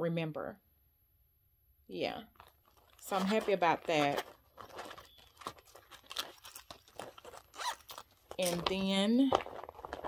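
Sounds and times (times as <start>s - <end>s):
fabric pouch scrapes and rustles: 2.4s - 10.0s.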